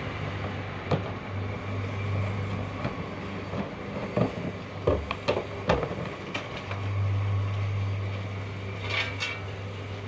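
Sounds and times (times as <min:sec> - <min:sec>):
concrete mixer drum humming: 0:00.0 - 0:10.0.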